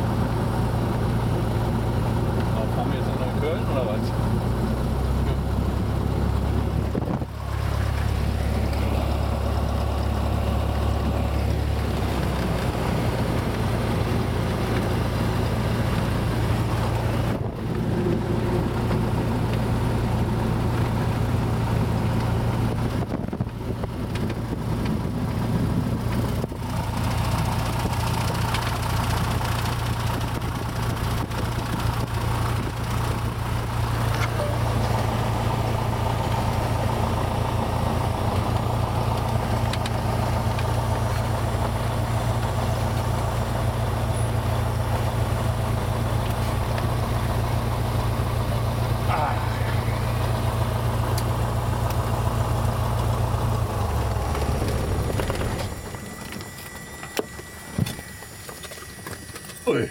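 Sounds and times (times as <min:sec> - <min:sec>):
propeller plane engine running: 0:00.0 - 0:59.9.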